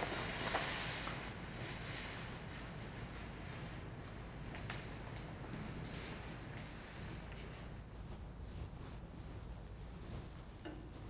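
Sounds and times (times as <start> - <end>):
clothing rustling: 0.0 - 11.0.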